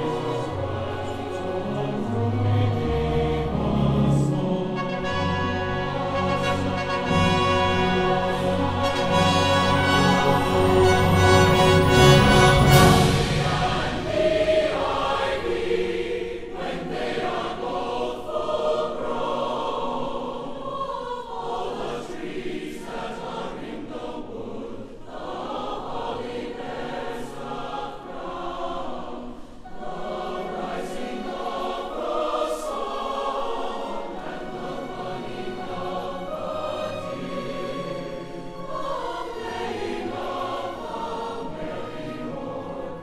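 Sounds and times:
choir singing a carol: 0.0s - 43.0s.

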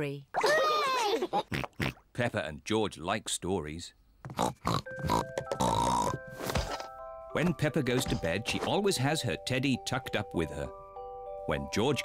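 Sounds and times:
cartoon pig snorting laughs: 0.9s - 2.0s.

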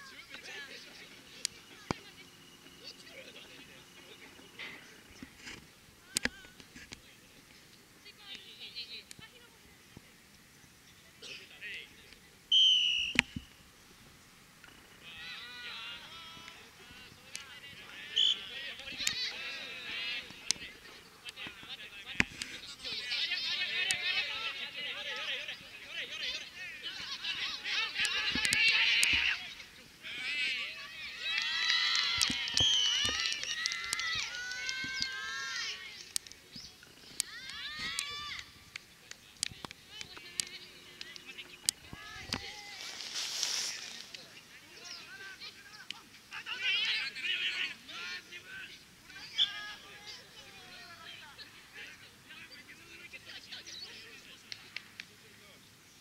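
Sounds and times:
referee's whistle blast: 12.5s - 13.4s
players shouting: 15.0s - 22.2s, 22.8s - 36.1s
players shouting together: 26.9s - 35.9s.

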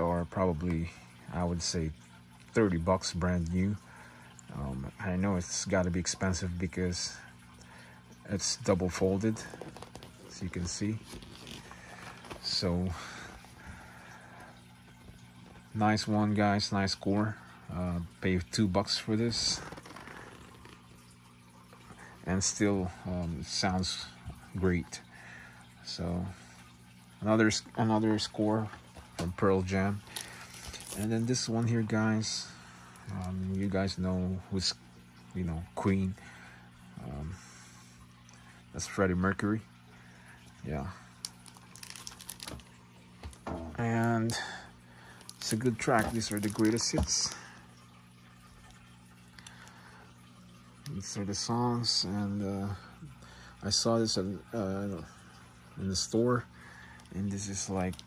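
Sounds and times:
low steady hum: 0.0s - 58.0s
plastic wrap crinkling: 9.3s - 12.6s, 30.0s - 31.4s, 41.2s - 43.5s, 45.1s - 47.6s
record jacket rustling: 9.3s - 12.7s.

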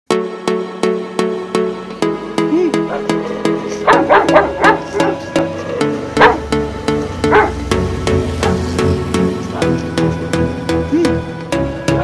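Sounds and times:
background music with steady beat: 0.1s - 12.0s
puppy yipping: 3.9s - 5.2s, 6.2s - 6.5s, 7.2s - 7.6s.

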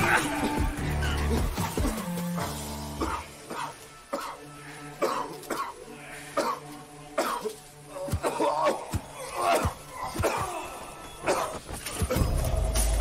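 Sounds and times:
tense film music with drone: 0.0s - 13.0s
choking cough-like breaths: 2.9s - 7.5s.

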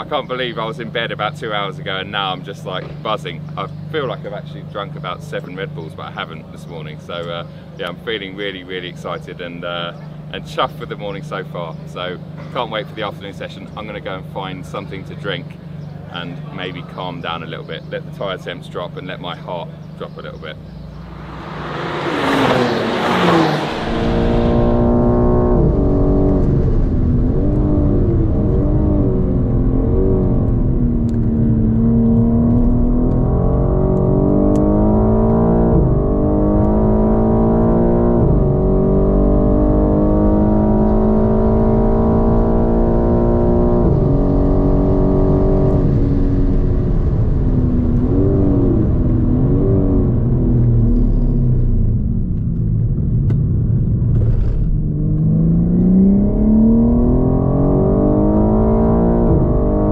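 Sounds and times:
car engine revving with upshifts: 19.1s - 59.9s
car passing at speed: 20.9s - 28.1s.

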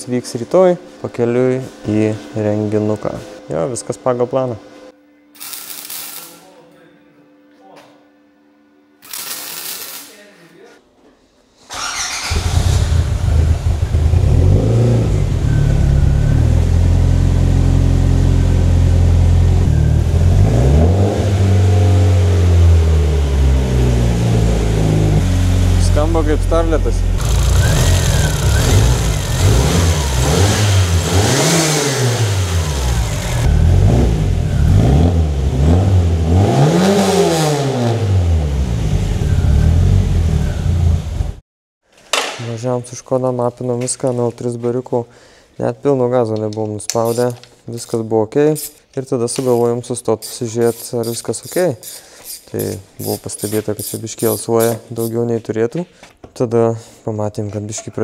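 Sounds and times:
car engine starting and revving: 11.7s - 41.4s.

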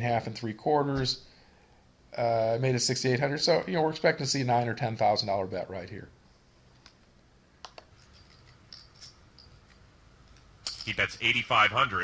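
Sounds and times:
man's voice: 10.8s - 12.0s.

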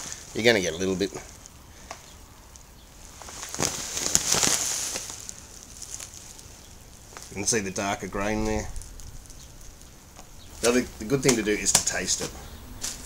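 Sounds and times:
grain shifting in bag: 0.0s - 13.0s
plastic bag crinkling: 0.0s - 13.0s.

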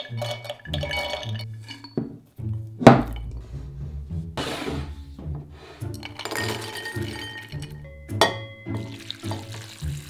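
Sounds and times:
nuts clinking into glass bowl: 0.0s - 2.1s, 6.0s - 9.0s
background music: 0.0s - 10.0s.

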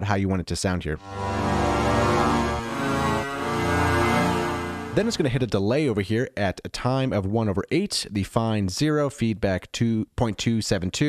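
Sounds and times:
synth cello notes: 1.0s - 5.2s.

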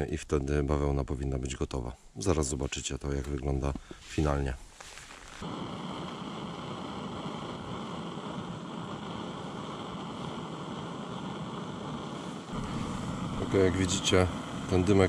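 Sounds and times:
gas stove burner running: 5.4s - 15.0s.

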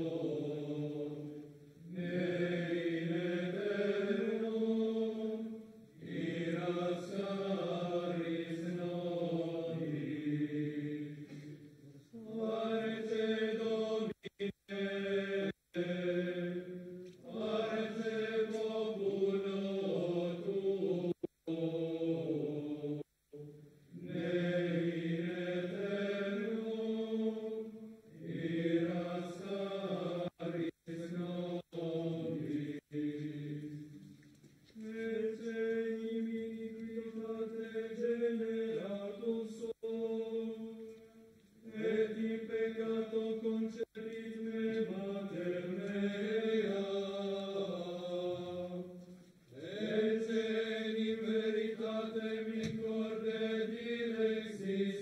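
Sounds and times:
men chanting a hymn: 0.0s - 34.0s, 34.8s - 41.0s, 41.6s - 55.0s.

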